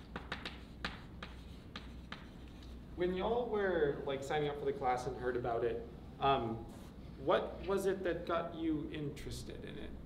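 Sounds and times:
chalk strokes on blackboard: 0.0 - 2.8.

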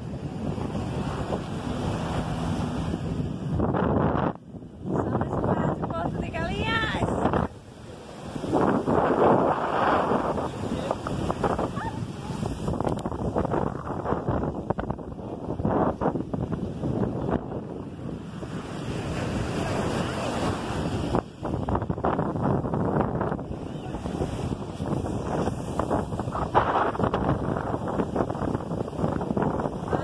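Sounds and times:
ocean surf breaking: 0.0 - 30.0
wind buffeting microphone: 0.0 - 30.0.

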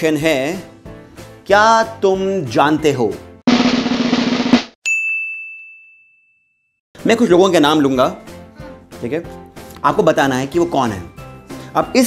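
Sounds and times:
bright bell ding: 4.8 - 6.7.

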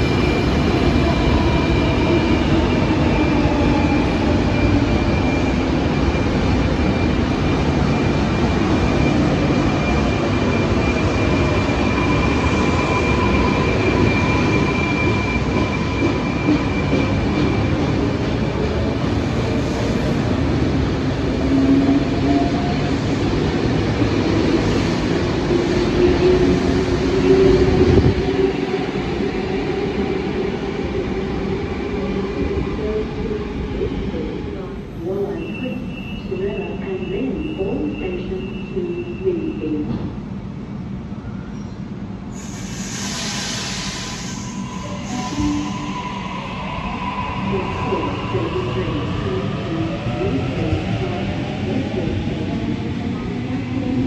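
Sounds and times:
electric train rumbling: 0.0 - 54.0.

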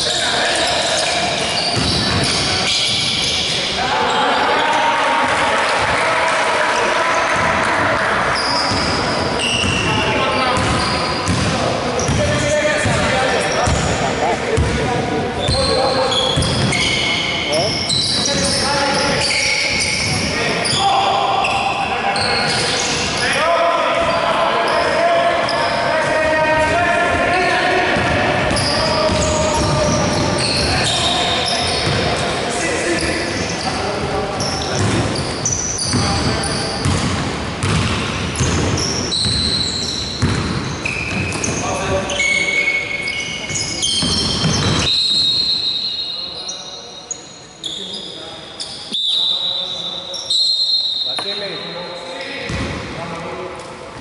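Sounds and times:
players calling out: 0.0 - 37.1
basketball bouncing on hardwood: 10.6 - 11.5, 36.8 - 39.4, 40.2 - 41.6.

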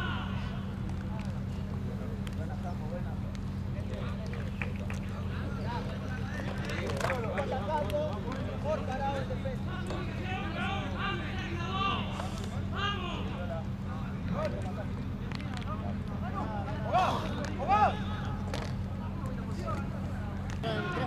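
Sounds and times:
players shouting: 0.0 - 21.0
steady low hum: 0.0 - 21.0.

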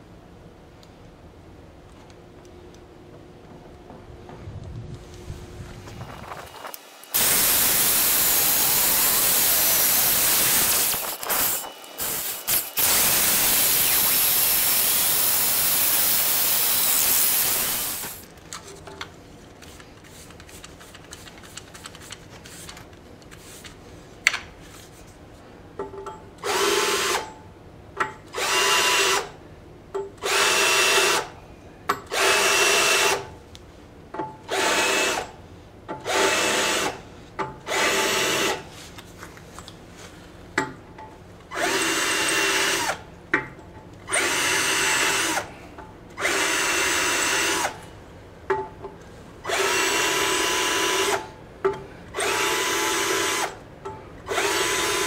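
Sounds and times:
sped-up drill hiss: 6.4 - 18.2
cordless drill bursts: 6.5 - 18.2, 26.4 - 27.4, 28.3 - 29.4, 30.2 - 31.4, 32.1 - 33.3, 34.5 - 35.4, 36.0 - 37.0, 37.7 - 38.7, 41.5 - 43.0, 44.1 - 45.5, 46.2 - 47.8, 49.4 - 51.4, 52.2 - 53.6, 54.3 - 55.0.

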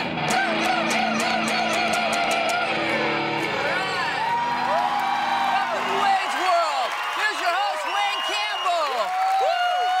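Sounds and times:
audience whooping and cheering: 0.2 - 10.0
men shouting a chant: 0.3 - 3.0.

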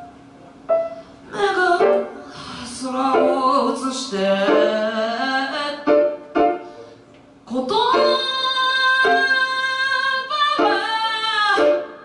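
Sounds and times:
grand piano: 0.0 - 12.0
woman singing: 1.3 - 6.1, 7.5 - 12.0.

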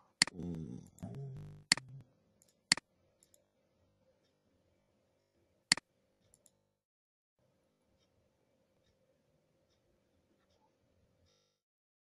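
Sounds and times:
person humming: 0.0 - 2.0
computer mouse clicks: 0.2 - 3.4, 5.7 - 6.6.

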